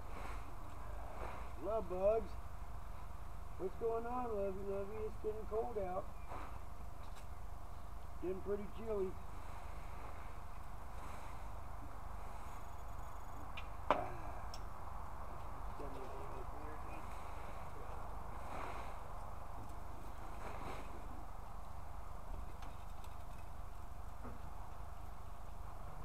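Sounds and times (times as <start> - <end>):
steady low rumble: 0.0 - 26.0
rake swishing through dry leaves: 20.1 - 21.1.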